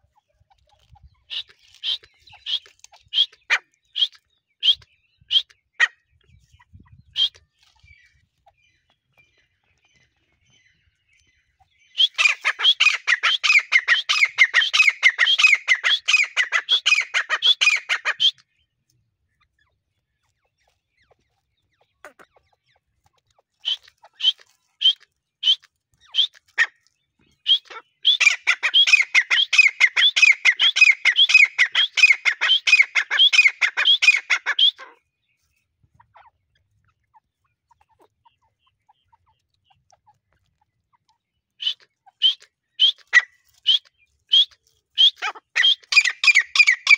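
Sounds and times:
francolin calling: 11.8 - 18.4, 27.4 - 35.0, 41.6 - 46.9.

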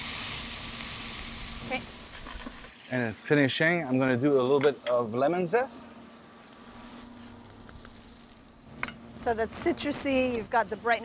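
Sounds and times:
food sizzling in a frying pan: 0.0 - 3.4, 6.4 - 11.0.

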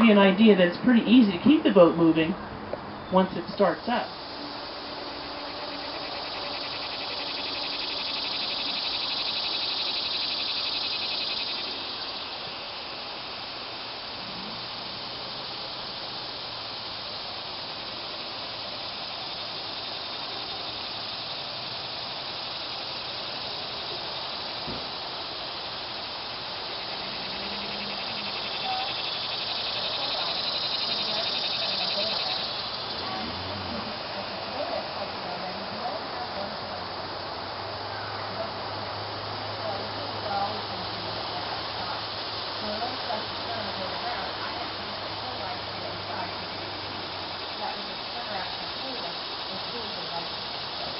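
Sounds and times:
insects buzzing: 0.0 - 50.9
outdoor background: 0.0 - 50.9.

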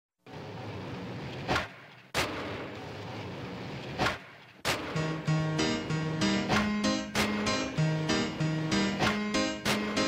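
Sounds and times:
loud sharp bang: 4.0 - 5.2.

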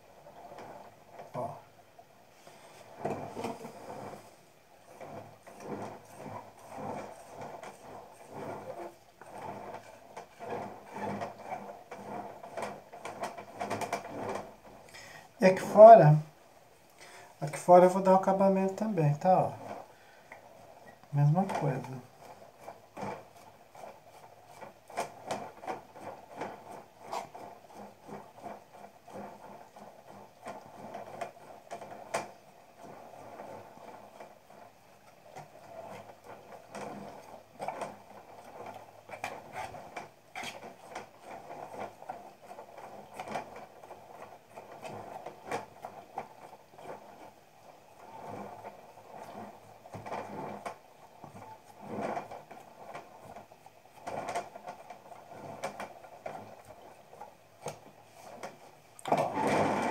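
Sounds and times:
fingers scraping clay: 2.4 - 15.8, 19.4 - 59.9.

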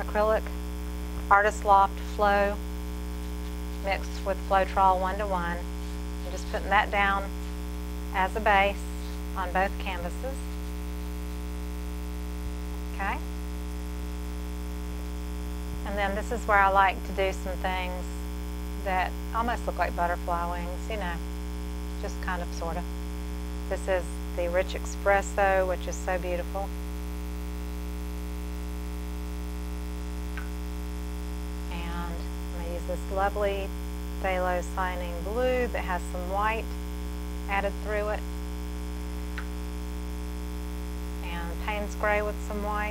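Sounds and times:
electrical mains hum: 0.0 - 42.9.

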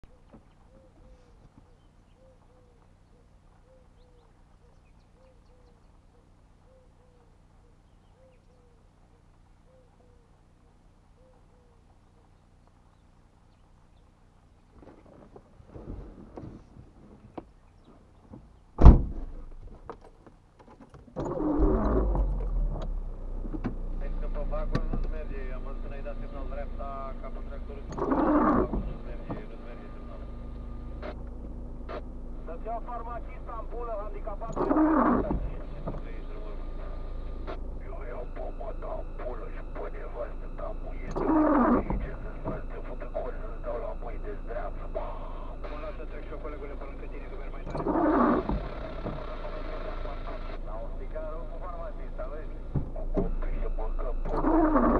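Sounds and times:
low thump: 18.8 - 19.5
car engine starting and idling: 18.8 - 54.9.

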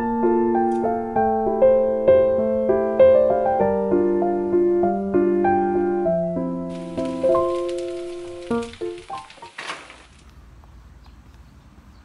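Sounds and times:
background piano music: 0.0 - 9.6.

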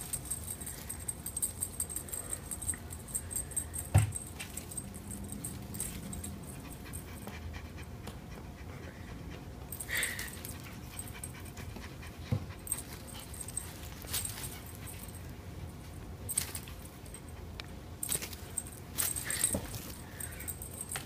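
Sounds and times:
thump: 3.9 - 4.2
cat panting: 4.5 - 15.6.

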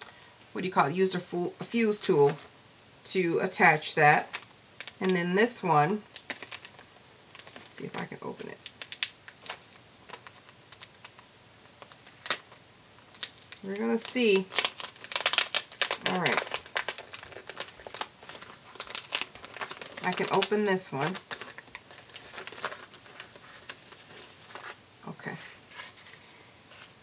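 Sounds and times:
plastic packaging crinkling: 4.2 - 5.2, 6.0 - 26.2.

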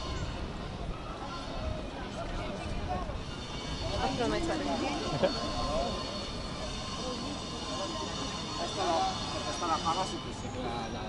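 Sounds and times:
passers-by talking: 0.0 - 11.0.

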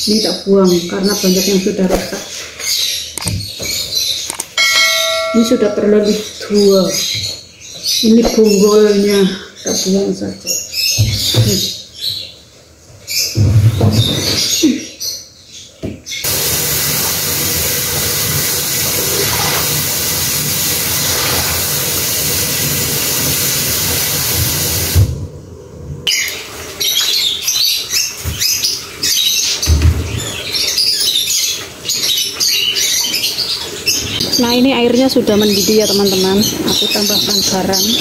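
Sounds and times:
birds chirping: 0.0 - 16.3, 26.1 - 38.0
kitchen tap running: 16.3 - 25.1, 26.2 - 38.0.

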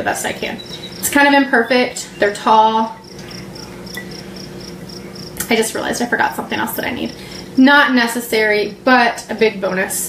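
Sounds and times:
faint low hum: 0.0 - 9.9
insect chirping: 0.6 - 5.4.

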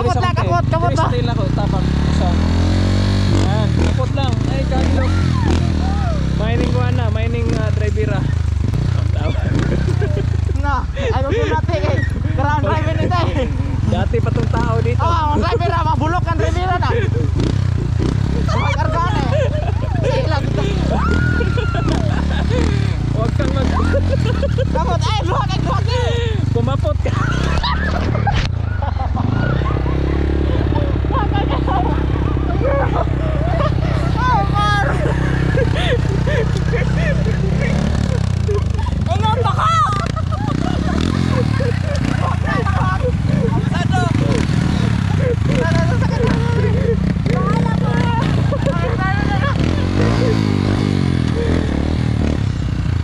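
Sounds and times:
small motorcycle engine: 0.0 - 53.0.

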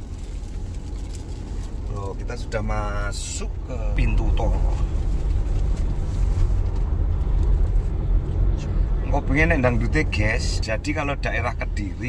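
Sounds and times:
car tyres and engine rumble: 0.0 - 12.0.

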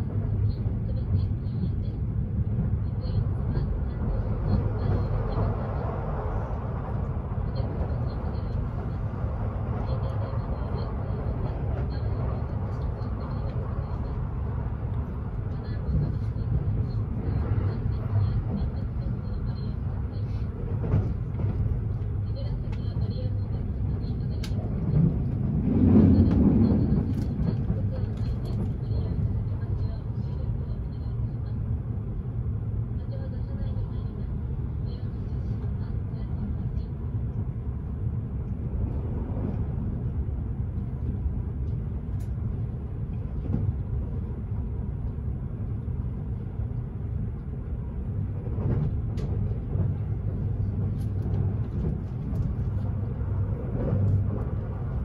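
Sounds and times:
train running at speed: 0.0 - 55.0.

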